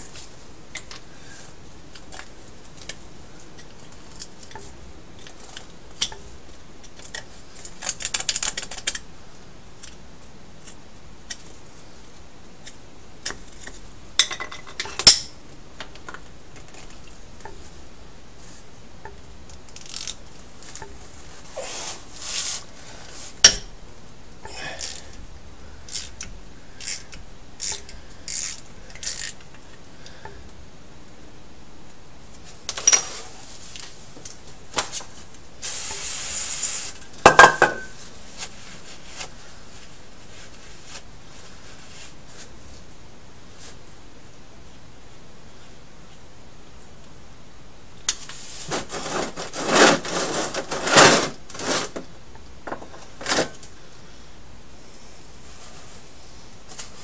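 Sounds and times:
ringing metal clink: 0:32.8 - 0:33.2, 0:37.1 - 0:38.0
short hiss: 0:35.6 - 0:37.1.

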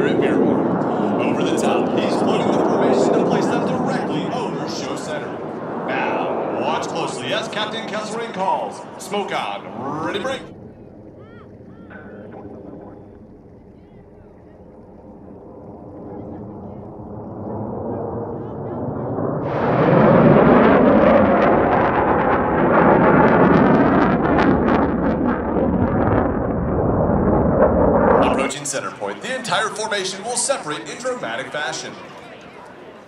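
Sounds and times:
jet engine roar: 0:00.0 - 0:33.0.

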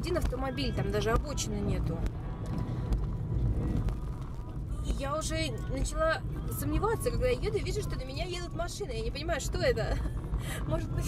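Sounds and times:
car cabin rumble on rough road: 0:00.0 - 0:11.0.

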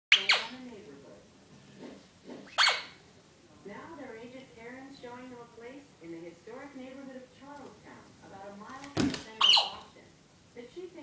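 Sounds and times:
television talk: 0:00.1 - 0:11.0
puppy barking: 0:02.6 - 0:03.0.

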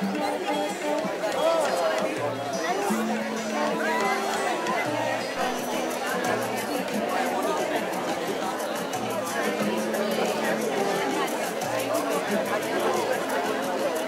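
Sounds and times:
music from loudspeakers: 0:00.0 - 0:14.0
people chatting and laughing: 0:00.0 - 0:14.0.

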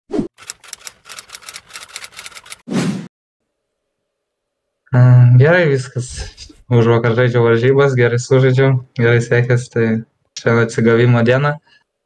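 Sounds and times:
rapid sharp clicks: 0:00.4 - 0:02.6.

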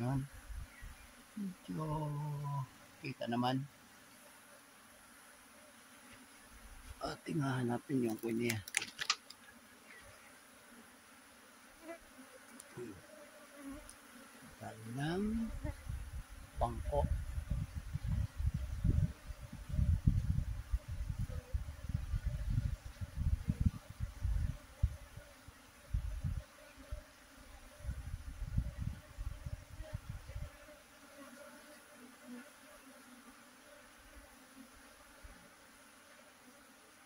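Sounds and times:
bees humming past: 0:00.0 - 0:37.0
swarm of bees buzzing: 0:00.0 - 0:37.0.

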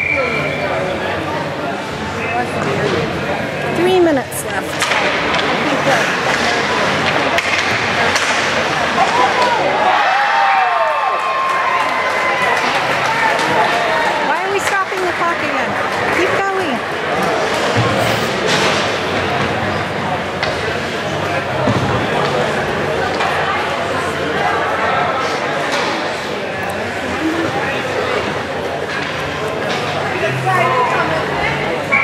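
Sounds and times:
spectators talking and calling out: 0:00.0 - 0:32.0
sticks and puck knocking boards: 0:04.8 - 0:09.5.

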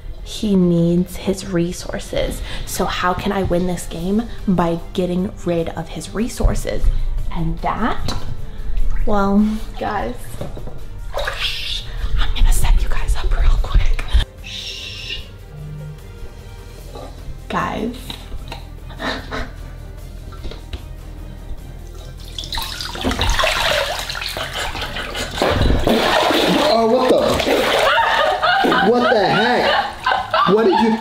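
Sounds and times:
bath water sloshing: 0:08.0 - 0:12.3, 0:21.7 - 0:30.4
liquid splattering onto head: 0:22.2 - 0:24.6, 0:25.4 - 0:28.1.

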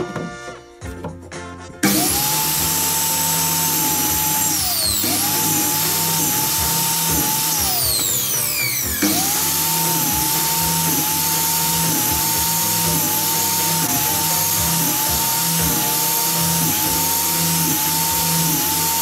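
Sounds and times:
mitre saw motor whining: 0:01.8 - 0:19.0.

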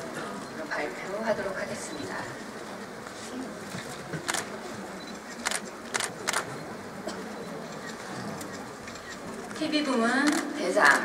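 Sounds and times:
quiet hall ambience: 0:00.0 - 0:11.0
sharp clicks: 0:05.4 - 0:06.5.

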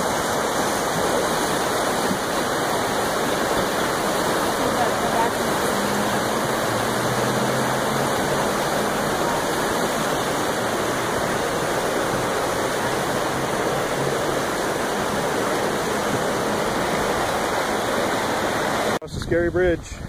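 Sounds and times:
whitewater rushing over rocks: 0:00.0 - 0:19.0.

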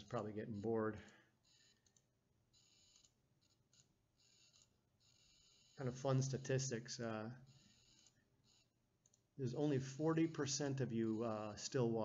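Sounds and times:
computer mouse clicks: 0:01.0 - 0:04.7, 0:07.5 - 0:09.3.

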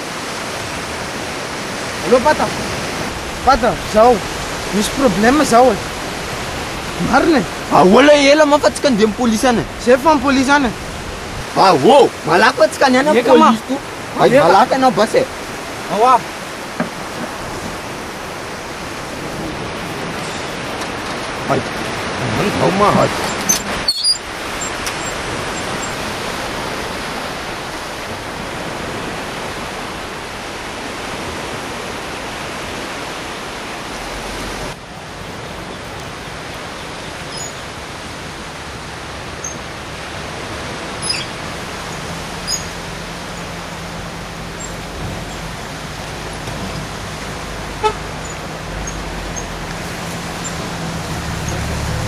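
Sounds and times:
even rush of noise: 0:00.0 - 0:52.0.

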